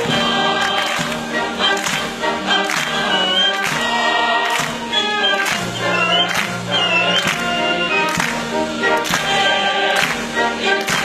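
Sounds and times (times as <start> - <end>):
opera singers and orchestra: 0.0 - 11.0
sharp rhythmic hits: 0.0 - 11.0.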